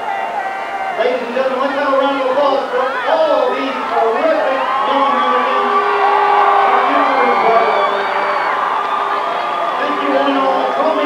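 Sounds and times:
crowd cheering and whooping: 0.0 - 11.0
long held yells: 0.0 - 11.0.

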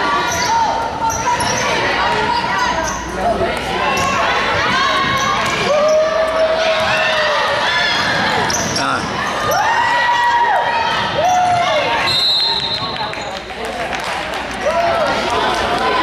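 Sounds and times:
voices echoing in hall: 0.0 - 16.0
sneakers squeaking: 0.2 - 3.3, 3.9 - 7.1, 8.0 - 9.9, 11.2 - 13.5.

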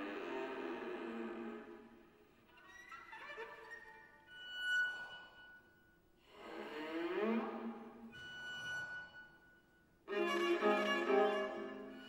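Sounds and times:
bowed strings: 10.1 - 12.0.

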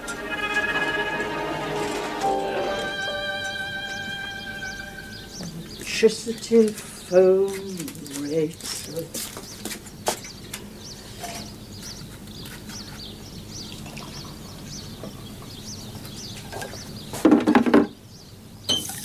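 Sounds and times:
falling pitched sound: 0.0 - 5.6
small birds chirping: 2.9 - 19.0.

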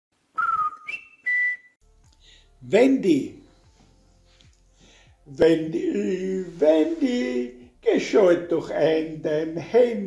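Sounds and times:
whistled notes: 0.3 - 1.8.

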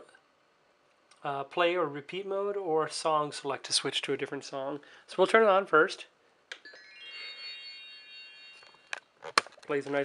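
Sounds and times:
toy electronic chime jingle: 6.6 - 9.0.

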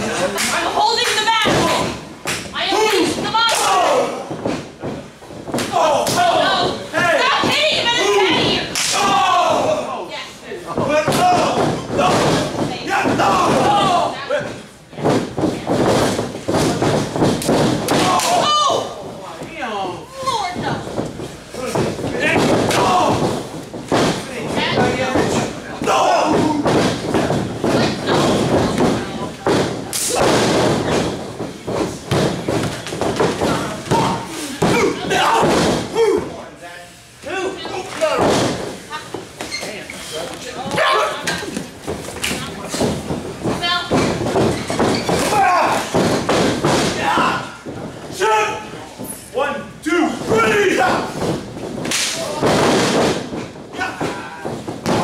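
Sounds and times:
people shouting: 2.6 - 4.3, 5.6 - 10.1, 10.9 - 14.4, 17.9 - 19.0, 21.6 - 23.5, 25.8 - 26.9, 33.5 - 36.3, 45.0 - 46.1, 46.8 - 48.8, 49.9 - 51.2
bodies thudding on ring mat: 10.7 - 14.2, 15.0 - 19.6, 20.3 - 36.3, 37.7 - 39.5, 40.6 - 49.2, 50.1 - 55.0.

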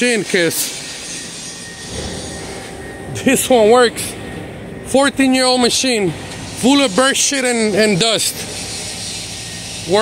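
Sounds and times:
machine humming and hissing: 0.0 - 10.0.

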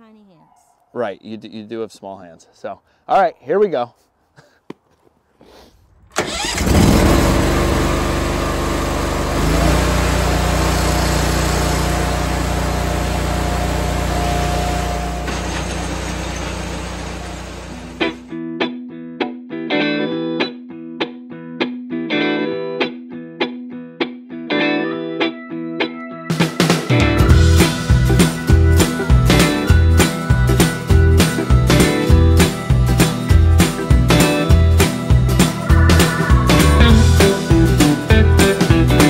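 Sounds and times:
engine running hard: 6.2 - 18.3, 34.6 - 39.0
music with guitar and drums: 18.0 - 39.0.

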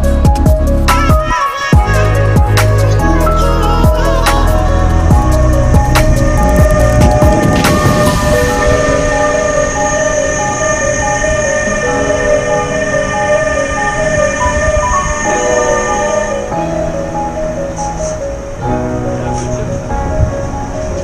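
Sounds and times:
background music with melody: 0.0 - 21.0
freight train rumbling past: 1.9 - 21.0.

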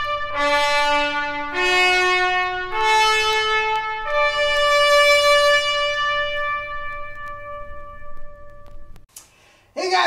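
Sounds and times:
trumpet holding long note: 0.0 - 9.0.

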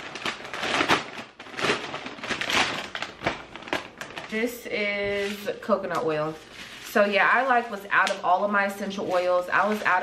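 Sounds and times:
plastic wrapping crinkling: 0.0 - 10.0.

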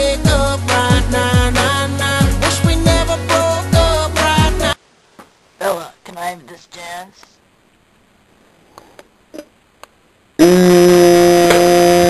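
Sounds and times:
loud buzzing drone: 10.4 - 12.0.

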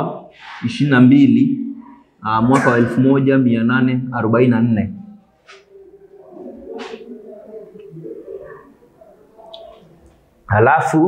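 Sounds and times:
dove cooing: 5.4 - 10.4.

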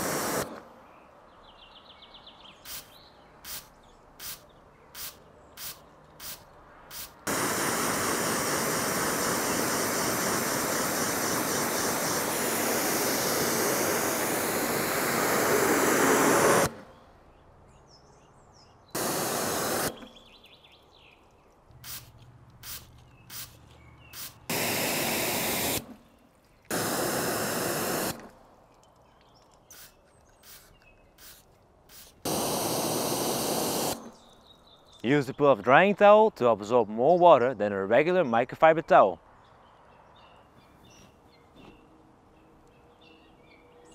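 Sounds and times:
pressure washer water jet: 0.0 - 0.6, 5.0 - 16.8, 19.0 - 20.2, 24.2 - 26.0, 26.7 - 28.3, 31.9 - 34.1
spray bottle squirting: 0.0 - 0.6, 2.7 - 16.8, 19.0 - 20.2, 21.7 - 26.1, 26.7 - 28.4, 29.6 - 34.2.

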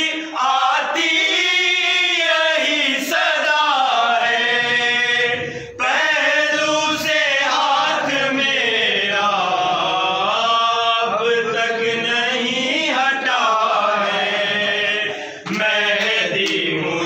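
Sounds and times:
men chanting a lament: 0.0 - 17.0.

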